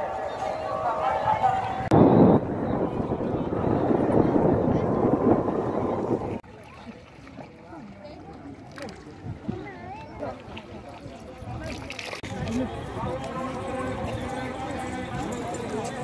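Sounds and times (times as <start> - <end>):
crowd murmur: 0.0 - 16.0
scattered faint voices: 0.0 - 16.0.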